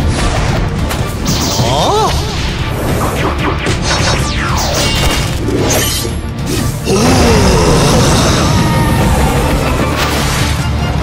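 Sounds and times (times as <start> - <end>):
dramatic battle music: 0.0 - 11.0.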